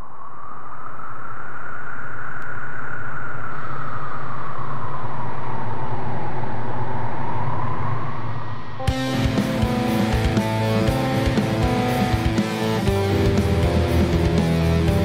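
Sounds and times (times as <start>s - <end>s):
low drone: 0.0s - 15.0s
synthesized noise sweep: 0.0s - 15.0s
guitar: 8.8s - 15.0s.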